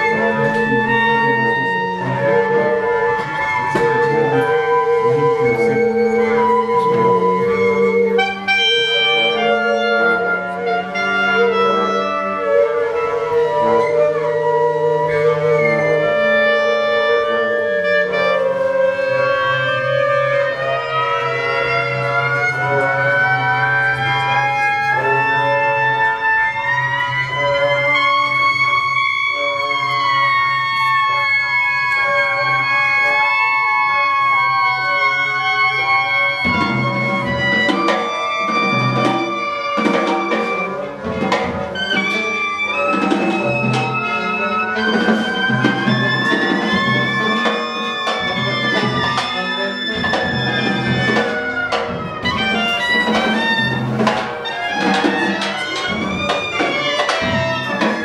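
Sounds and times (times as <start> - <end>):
clarinets playing: 0.0 - 58.0
free jazz ensemble: 0.0 - 58.0
held horn notes: 0.0 - 58.0.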